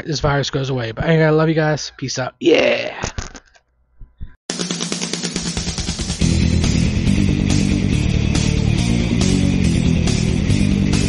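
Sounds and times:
music with steady beat: 4.5s - 11.0s
heavy bass: 5.4s - 11.0s.

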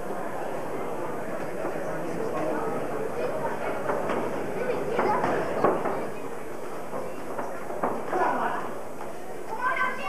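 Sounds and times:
crowd murmur in hall: 0.0s - 10.0s.

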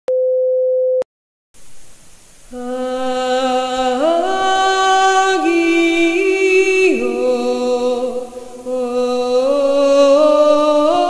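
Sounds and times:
steady pure beep: 0.1s - 1.0s
hiss: 8.0s - 8.9s.

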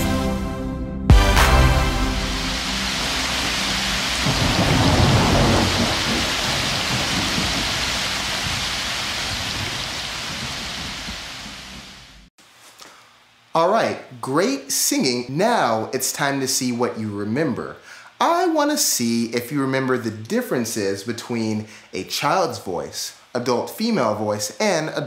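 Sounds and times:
steady rain: 1.6s - 12.3s
thunderclap: 1.9s - 12.3s
rolling thunder rumble: 2.1s - 12.3s.

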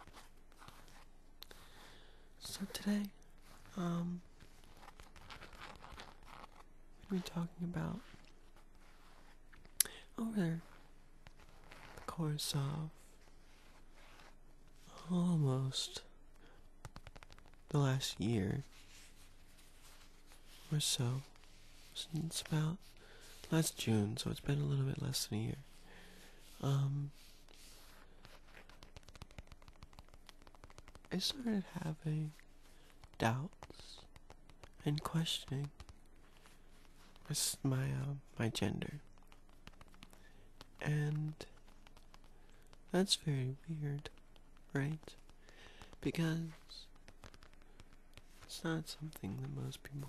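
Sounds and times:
fingers scratching on leather: 3.3s - 7.2s, 10.6s - 12.1s, 12.9s - 14.4s, 16.8s - 17.7s, 25.6s - 31.2s, 31.9s - 37.3s, 38.9s - 42.9s, 44.0s - 50.0s
fingers tapping on leather: 16.8s - 17.7s, 28.2s - 31.1s, 32.9s - 34.8s, 39.1s - 40.8s, 41.6s - 42.9s, 46.8s - 48.5s.

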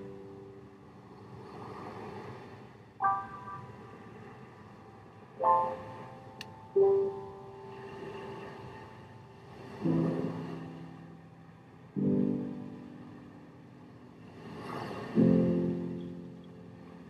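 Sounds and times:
soft piano chords: 0.0s - 1.6s, 2.5s - 17.0s.

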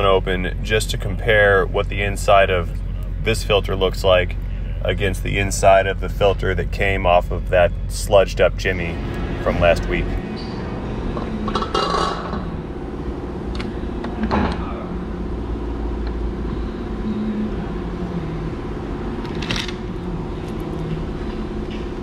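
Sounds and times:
steady background hum: 0.0s - 22.0s.

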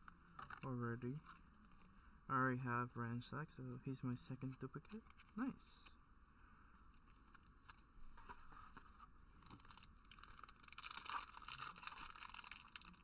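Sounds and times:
wrapper crinkling and tearing: 9.4s - 13.0s.

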